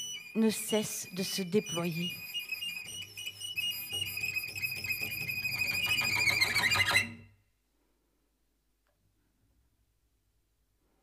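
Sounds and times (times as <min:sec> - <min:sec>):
cello bowed high tone: 0:00.0 - 0:07.3.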